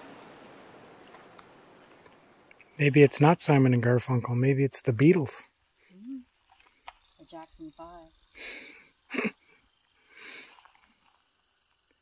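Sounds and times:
breathy puffs: 8.3s - 10.7s.

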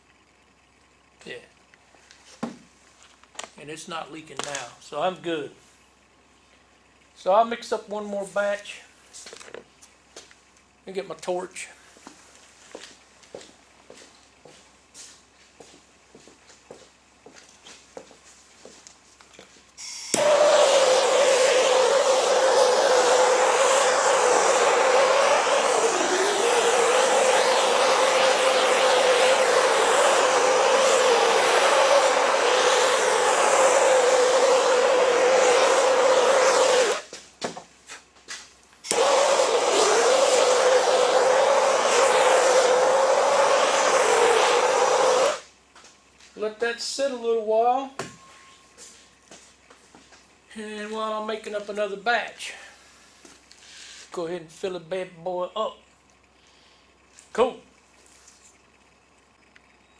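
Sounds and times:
gas torch flame hissing: 19.8s - 37.1s, 38.8s - 45.5s.

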